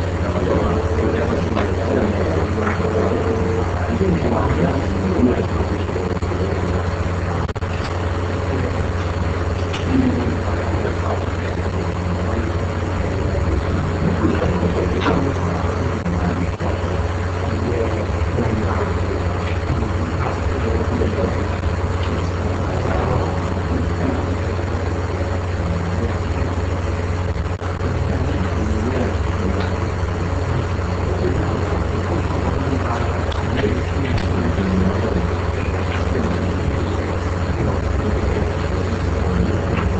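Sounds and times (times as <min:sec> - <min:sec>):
steady low hum: 0:00.0 - 0:39.9.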